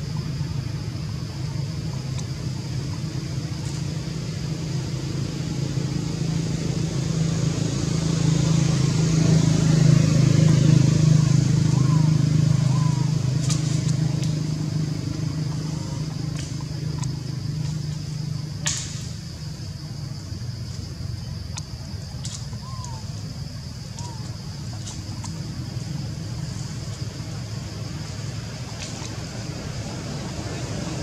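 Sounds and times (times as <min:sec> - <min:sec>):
steady background drone: 0:00.0 - 0:31.0
vehicle engine passing: 0:04.5 - 0:19.2, 0:24.6 - 0:31.0.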